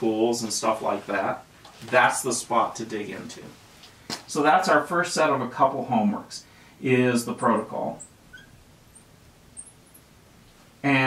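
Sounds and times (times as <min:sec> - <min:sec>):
marker squeaking on glass board: 0:07.5 - 0:10.2.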